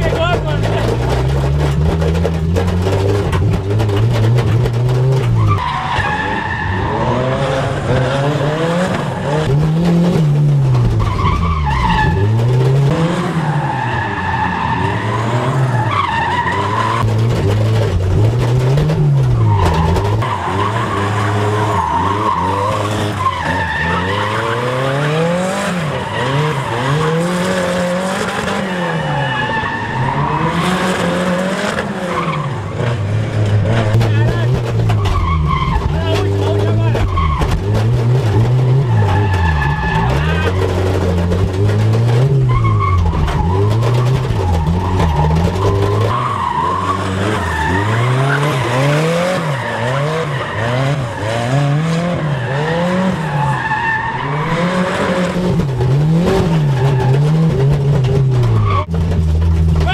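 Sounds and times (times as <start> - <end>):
car engine revving: 0.0 - 59.9.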